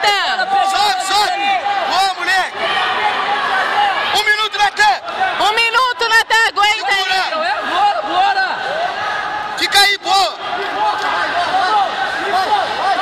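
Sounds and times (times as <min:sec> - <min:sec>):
man shouting: 0:00.0 - 0:02.5.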